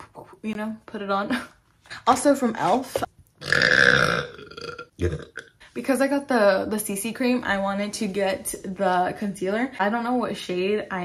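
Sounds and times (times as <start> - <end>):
woman burping: 3.4 - 5.6.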